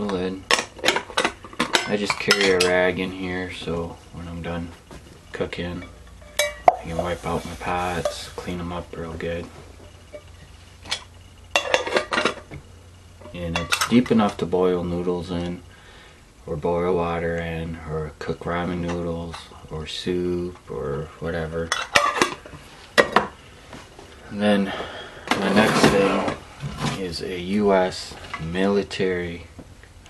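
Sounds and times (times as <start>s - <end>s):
metal pot lid clinking: 5.8s - 6.9s.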